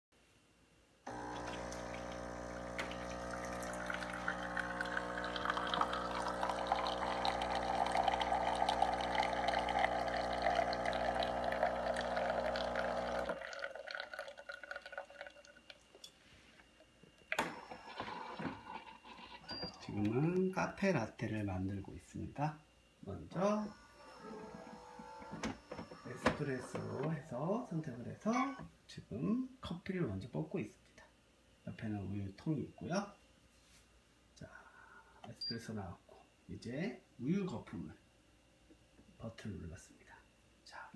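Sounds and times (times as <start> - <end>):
espresso machine pump humming: 1.1 - 15.3, 23.4 - 28.6
espresso pouring into cup: 1.1 - 15.9, 24.2 - 27.1.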